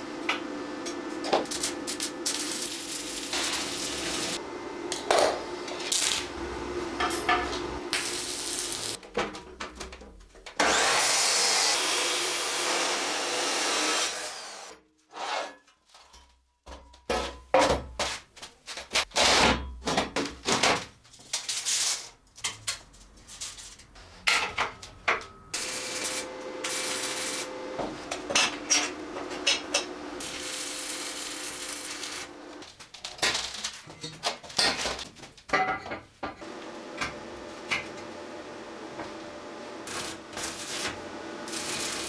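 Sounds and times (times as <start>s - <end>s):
steady hum: 0.0s - 9.0s
abrasive saw cutting steel: 10.6s - 15.6s, 25.6s - 27.8s, 28.4s - 32.4s, 39.8s - 42.0s.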